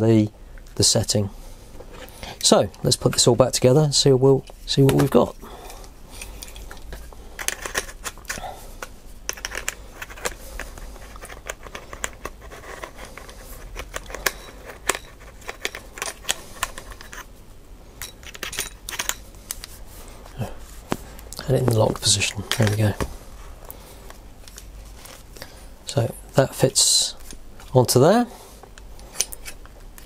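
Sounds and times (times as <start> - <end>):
plastic and metal parts clicking: 6.4 - 17.3.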